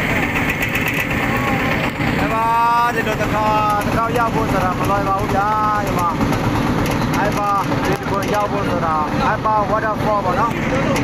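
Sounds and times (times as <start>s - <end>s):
boat motor running: 0.0s - 11.0s
water rushing past hull: 0.0s - 11.0s.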